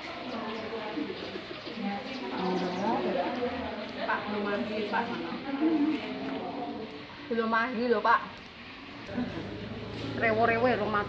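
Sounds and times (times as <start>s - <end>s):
voices talking: 0.0s - 11.0s.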